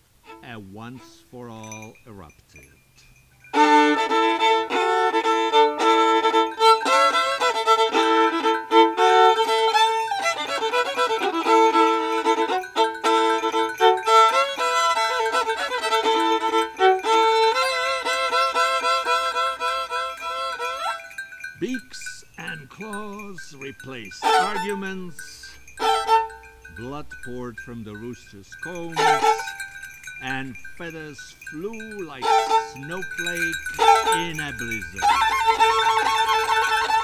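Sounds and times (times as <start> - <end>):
solo violin playing: 0.2 - 1.2, 3.5 - 21.2, 24.2 - 24.7, 25.8 - 26.6, 28.9 - 29.6, 32.2 - 32.8, 33.6 - 34.2, 35.0 - 37.0.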